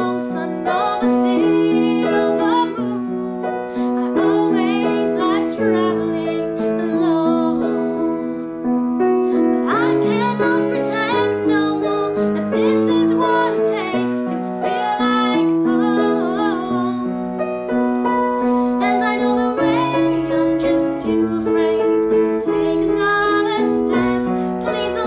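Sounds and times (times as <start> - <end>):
woman singing: 0.0 - 8.6, 9.4 - 17.4, 18.7 - 25.0
piano chords: 0.0 - 25.0.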